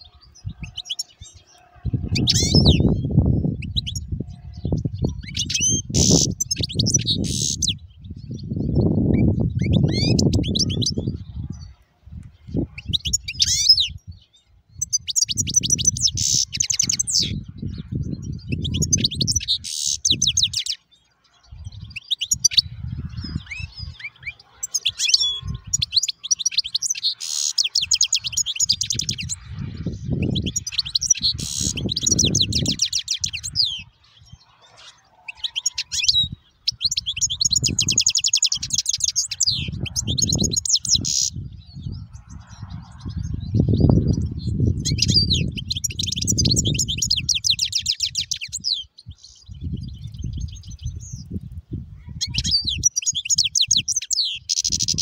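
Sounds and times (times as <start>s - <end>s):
goldfinch singing: 0.0s - 51.3s, 52.2s - 55.0s.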